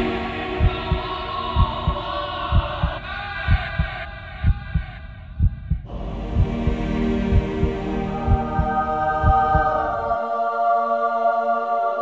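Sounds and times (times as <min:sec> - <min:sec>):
heartbeat double thumps: 0:00.6 - 0:09.8
muffled music bed: 0:05.9 - 0:12.0.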